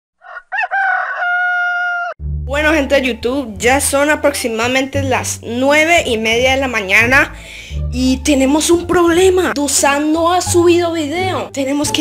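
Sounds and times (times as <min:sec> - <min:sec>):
rooster crowing: 0:00.2 - 0:02.2.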